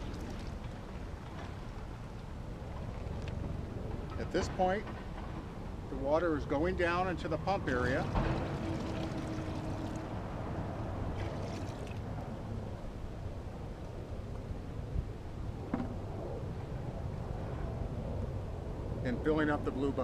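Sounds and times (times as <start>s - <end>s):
water pouring from a bucket: 0.0s - 0.8s, 8.0s - 10.2s, 11.1s - 12.2s
water running into reservoir: 0.0s - 2.2s, 6.1s - 12.5s
steady low rumble: 0.0s - 20.0s.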